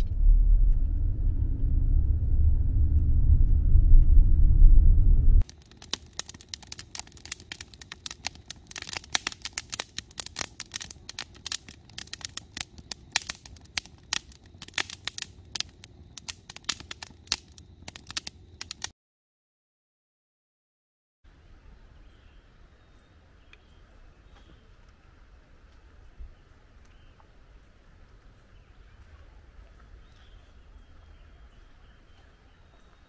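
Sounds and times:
road rumble inside a moving car: 0:00.0 - 0:05.4
campfire crackling and popping: 0:05.4 - 0:18.9.

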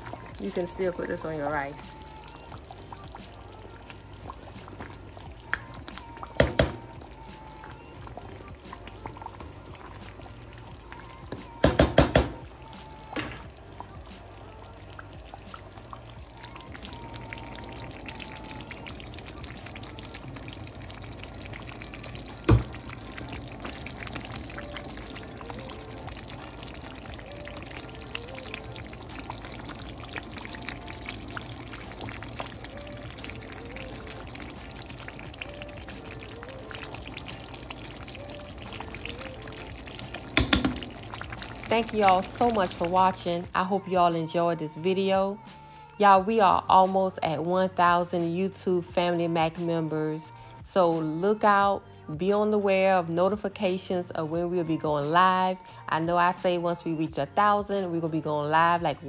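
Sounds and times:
gravy bubbling in a skillet: 0:00.0 - 0:43.6.

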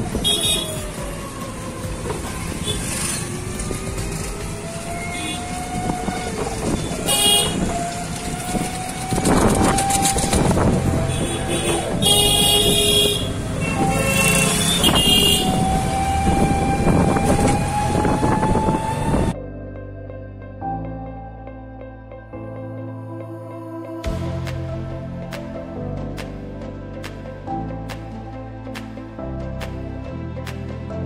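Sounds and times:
road noise with rising whine: 0:00.0 - 0:19.4
vehicle horns tooting: 0:00.2 - 0:00.8, 0:06.7 - 0:07.8, 0:11.0 - 0:15.7.

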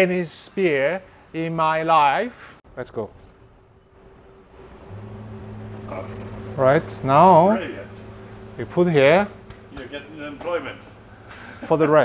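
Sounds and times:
steady low hum: 0:03.0 - 0:12.0.

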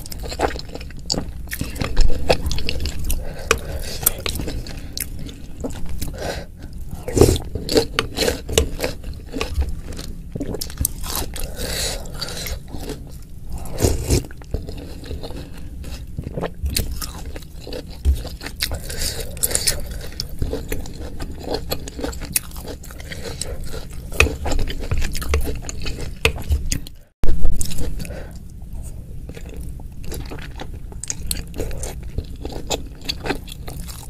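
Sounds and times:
chewing: 0:00.0 - 0:34.0.

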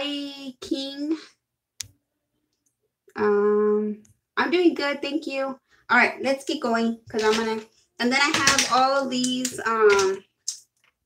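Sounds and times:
woman's voice: 0:00.0 - 0:01.4, 0:03.1 - 0:10.3.

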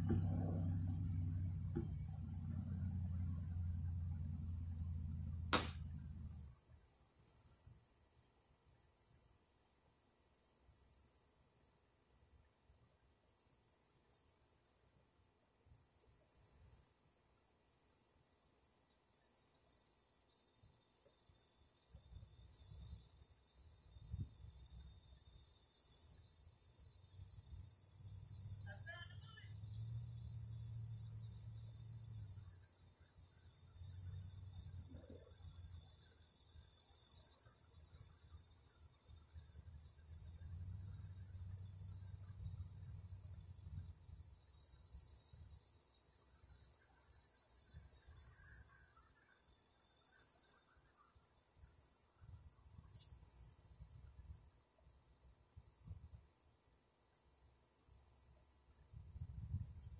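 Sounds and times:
faint low rumble: 0:00.0 - 0:06.8
insect chirping pulse: 0:00.0 - 0:59.9
insect drone: 0:00.0 - 0:59.9.

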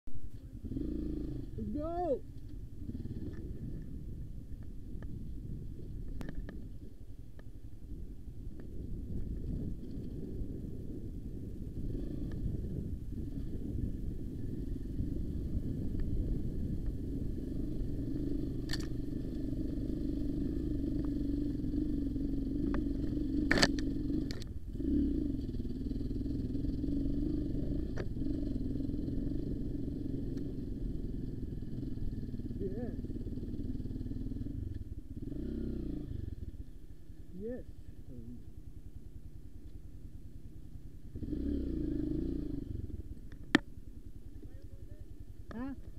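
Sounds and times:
dirt bike engine idling: 0:00.4 - 0:45.9
sharp click: 0:23.4 - 0:24.5.

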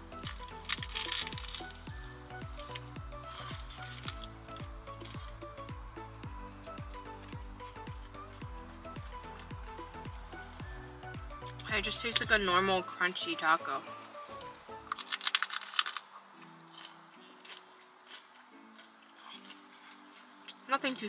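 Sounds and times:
background music with steady beat: 0:00.0 - 0:21.0
crunchy bite into taco shell: 0:00.2 - 0:02.0, 0:14.7 - 0:20.6
crunching chews: 0:00.2 - 0:05.8, 0:06.9 - 0:10.7, 0:14.4 - 0:20.7.

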